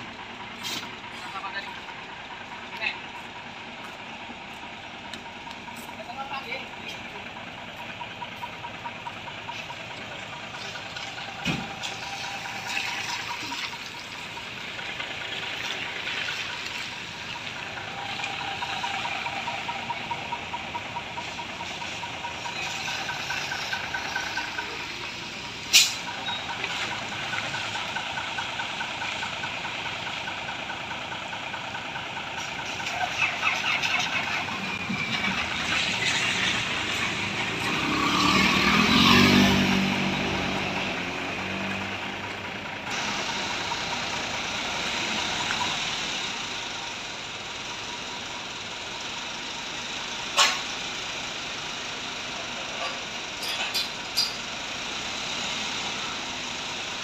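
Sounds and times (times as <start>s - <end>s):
diesel engine running: 0.0s - 57.0s.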